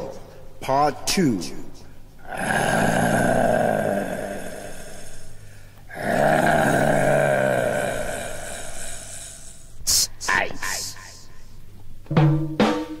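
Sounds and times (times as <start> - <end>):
deep voice-like growl: 2.2 - 9.7.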